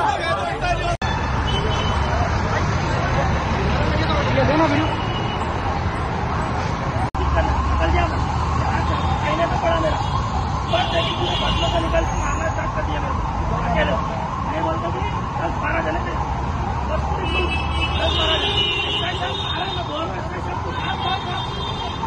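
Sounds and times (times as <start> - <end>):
men arguing: 0.0 - 1.0, 7.2 - 22.0
street traffic rumble: 0.0 - 22.0.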